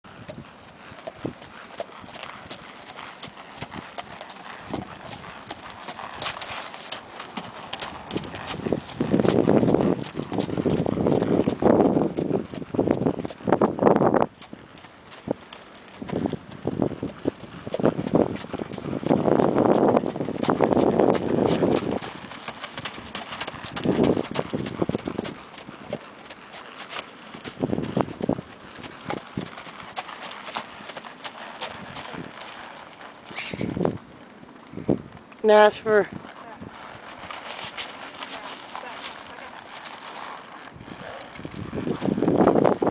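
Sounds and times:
hoofbeats on gravel: 0.1s - 42.9s.

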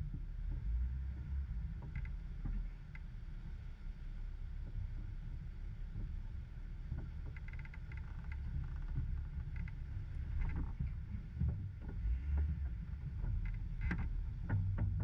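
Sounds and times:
off-road vehicle engine rumble: 0.0s - 15.0s.

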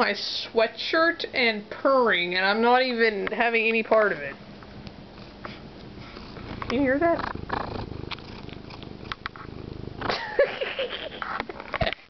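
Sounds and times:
cat purring: 2.1s - 11.8s.

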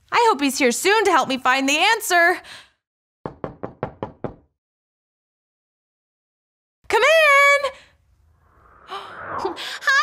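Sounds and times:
knocking on a door: 3.2s - 4.6s.

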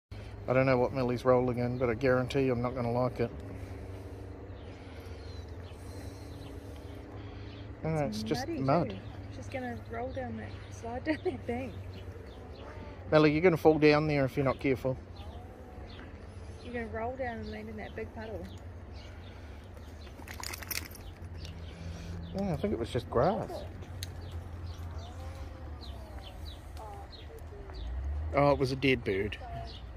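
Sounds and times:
low steady rumble: 0.1s - 29.9s
steady low hum: 0.1s - 29.9s
collar tag jingling: 20.0s - 21.7s.

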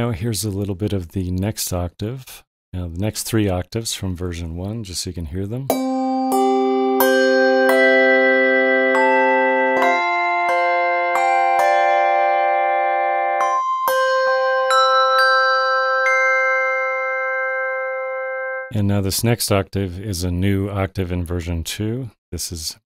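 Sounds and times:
sampled handbells ringing: 5.7s - 18.5s.

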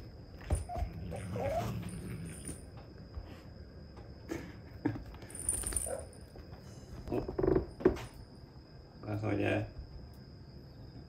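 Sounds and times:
cat whining cries: 0.5s - 2.2s
cat growling: 0.6s - 2.6s.

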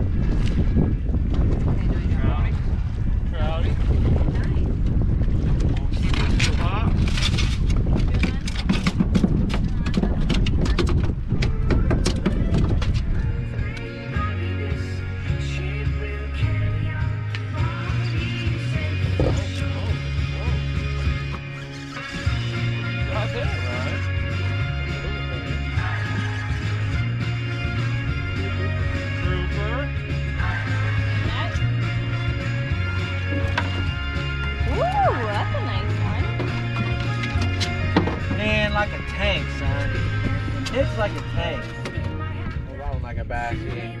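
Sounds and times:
wind buffeting microphone: 0.0s - 14.3s, 30.0s - 44.0s
background music with bass line: 0.0s - 44.0s
water around boat: 0.0s - 44.0s.

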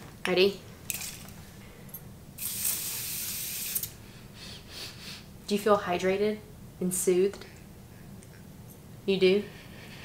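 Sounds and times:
aerosol can spraying: 2.4s - 3.9s.

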